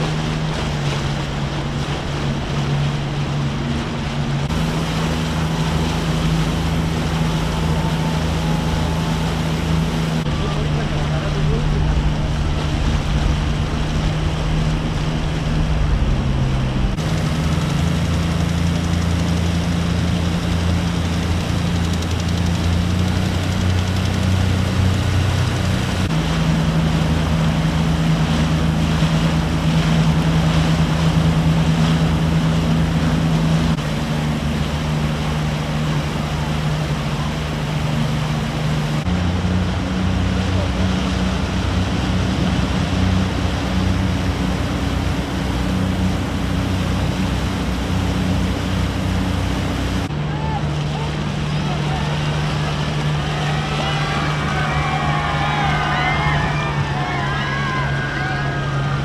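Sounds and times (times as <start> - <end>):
outboard motor drone: 0.0 - 59.0
water rushing: 0.0 - 59.0
wind: 0.0 - 59.0.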